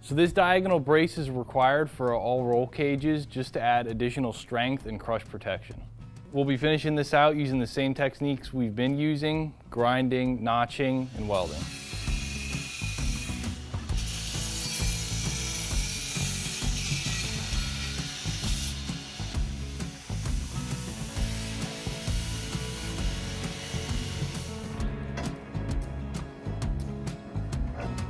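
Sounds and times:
background music with bass line: 8.5s - 28.0s
belt grinder grinding steel: 11.0s - 24.8s.

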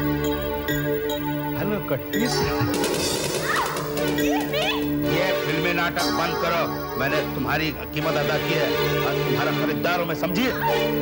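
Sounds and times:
background music: 0.0s - 11.0s
people crying out and shouting: 2.3s - 5.5s, 10.3s - 11.0s.

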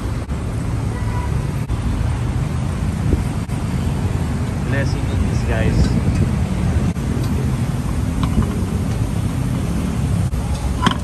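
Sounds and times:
road traffic: 0.0s - 11.0s
wind on microphone: 2.6s - 11.0s.

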